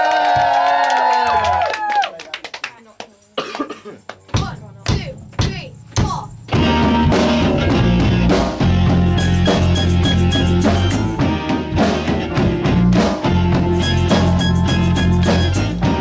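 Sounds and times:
people whooping: 0.0 - 2.3
rock band playing: 6.5 - 16.0.

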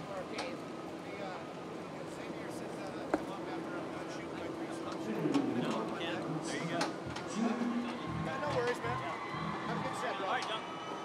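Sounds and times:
people talking: 0.0 - 10.6
background music: 7.0 - 10.0.

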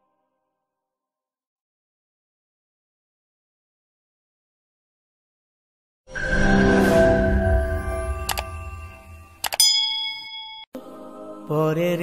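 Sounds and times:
metallic bell ding: 9.4 - 10.7.

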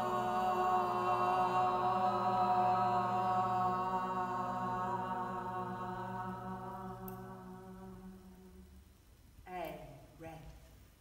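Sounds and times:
group of voices chanting a vowel: 0.0 - 8.7.

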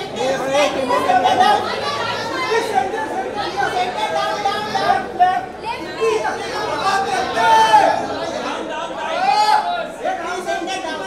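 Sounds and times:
crowd of voices calling out: 0.0 - 11.0.

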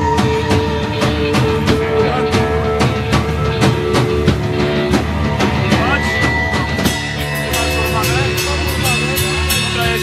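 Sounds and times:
drum kit beat: 0.0 - 10.0
live rock band playing: 0.0 - 10.0.

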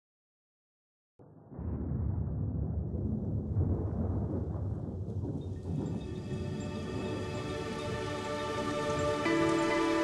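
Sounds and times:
thunder rumbling: 1.2 - 9.9
tuneful music: 6.2 - 10.0.

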